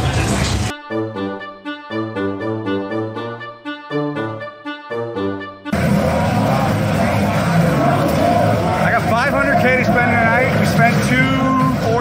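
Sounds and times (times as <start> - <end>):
traffic din: 5.8 - 12.0
voices: 5.8 - 12.0.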